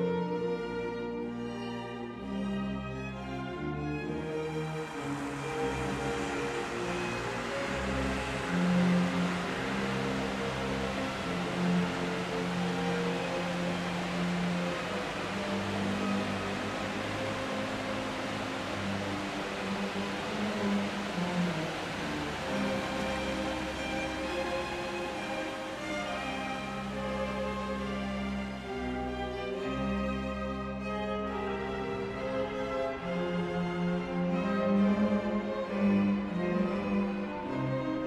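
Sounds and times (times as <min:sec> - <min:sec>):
slow orchestral music: 0:00.0 - 0:38.0
waterfall rushing: 0:03.2 - 0:38.0.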